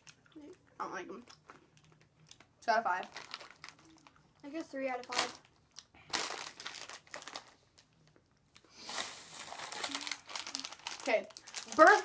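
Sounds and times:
plastic snack bag crinkling: 0.0 - 12.0.

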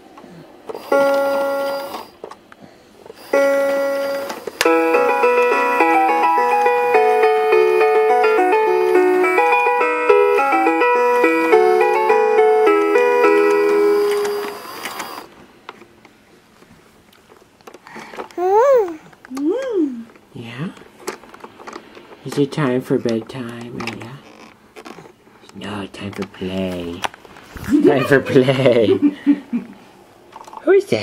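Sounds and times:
toy chime note: 0.8 - 1.9, 3.2 - 14.5
electronic toy tune: 0.8 - 2.0, 3.2 - 14.8.

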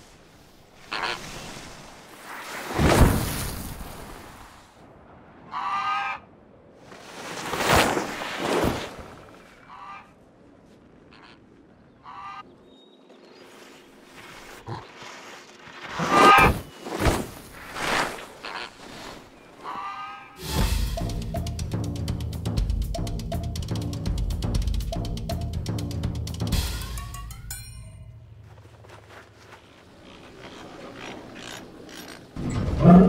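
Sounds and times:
skis swishing over snow: 0.0 - 4.7, 6.8 - 9.6, 13.3 - 19.8, 28.4 - 32.4.

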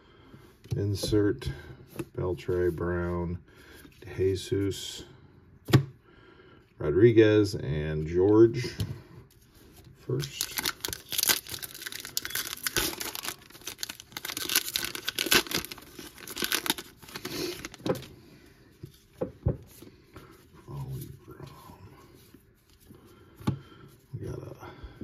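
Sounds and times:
wrapper being torn and crinkled: 10.1 - 18.1.

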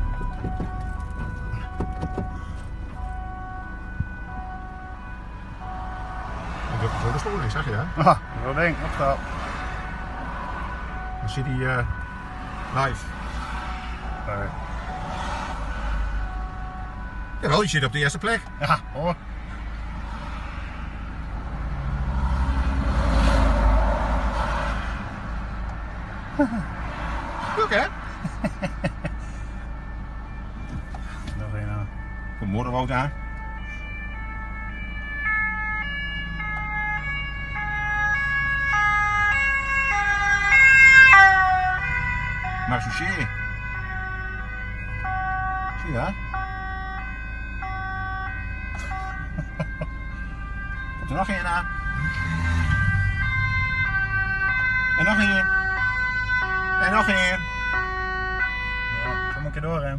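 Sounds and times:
van engine rumble: 0.0 - 17.4, 46.3 - 56.8
two-tone police siren: 0.0 - 59.9
short knocks: 0.1 - 2.4
low engine rumble: 48.8 - 56.7.

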